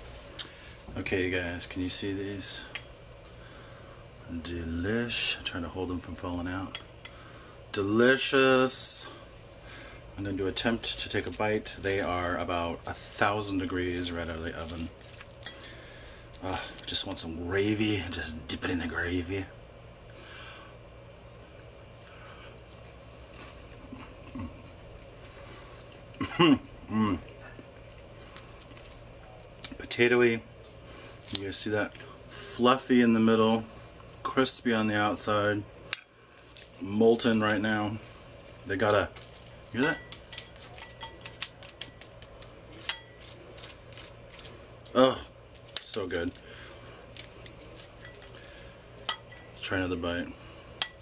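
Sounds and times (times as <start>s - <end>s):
faint chewing: 22.0s - 26.3s.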